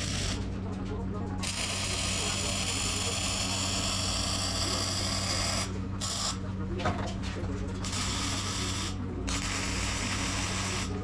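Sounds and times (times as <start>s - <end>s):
welding arc burning: 0.0s - 0.4s, 1.4s - 6.4s, 7.8s - 11.0s
low constant hum: 0.0s - 11.0s.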